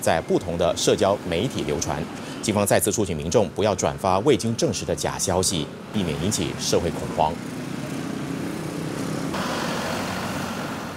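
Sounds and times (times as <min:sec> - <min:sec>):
vehicle engines humming: 0:00.0 - 0:10.9
road hiss: 0:01.3 - 0:02.7, 0:06.0 - 0:10.9.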